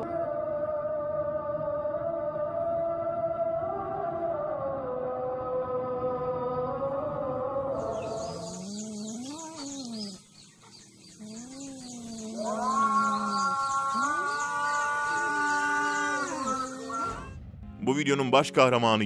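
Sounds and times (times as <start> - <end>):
call to prayer chanting: 0.0 - 10.2, 11.3 - 17.3
birds chirping: 7.8 - 17.4.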